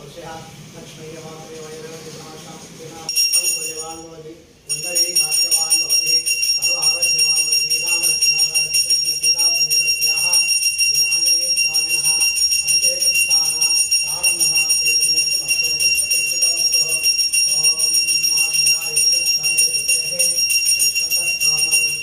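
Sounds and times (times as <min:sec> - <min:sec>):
man chanting or speaking: 0:00.0 - 0:22.0
temple bell ringing: 0:03.1 - 0:22.0.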